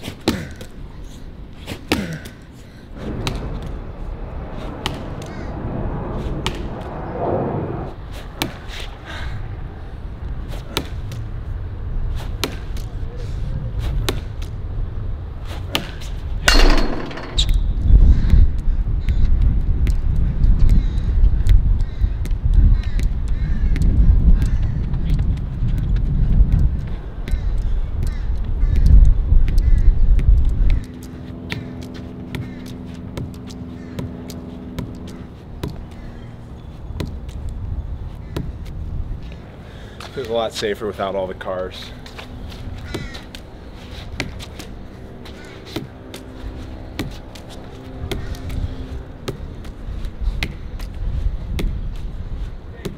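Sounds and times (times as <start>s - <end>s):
steady low hum: 0.7s - 22.4s, 23.0s - 52.9s
heavy low rumble: 2.9s - 8.4s, 16.4s - 18.8s
ball knocking on concrete wall: 16.5s - 17.6s.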